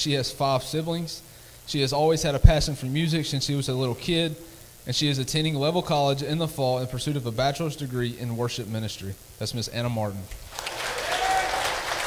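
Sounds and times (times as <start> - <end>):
congregation applauding: 10.5 - 12.0.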